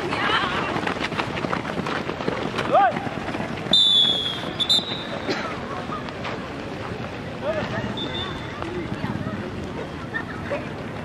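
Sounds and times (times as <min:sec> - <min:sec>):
runners' footfalls on dirt: 0:00.0 - 0:10.0
whistle blasts: 0:03.7 - 0:05.2.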